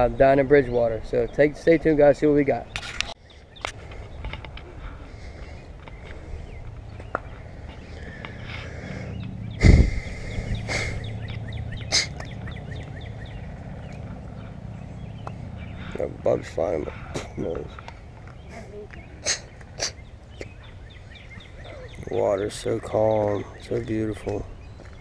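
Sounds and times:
small birds chirping: 0.0 - 25.0.

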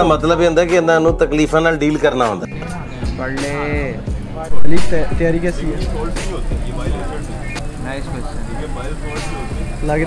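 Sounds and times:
people chattering: 2.4 - 10.0.

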